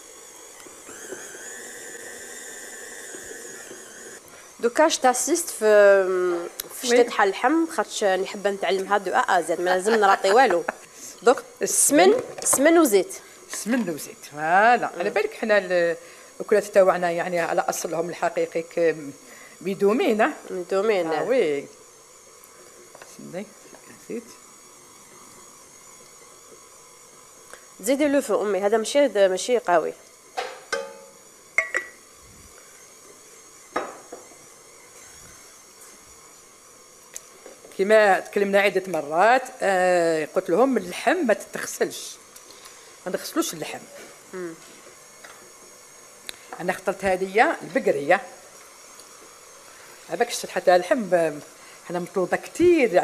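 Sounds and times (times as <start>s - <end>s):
room tone hiss: 0.0s - 53.0s
stand mixer motor whining: 0.0s - 53.0s.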